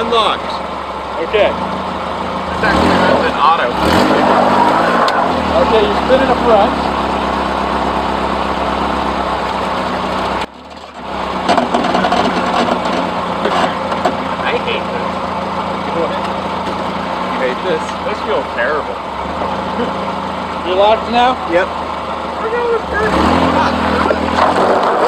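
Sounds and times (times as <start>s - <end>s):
car engine running: 0.0s - 25.0s.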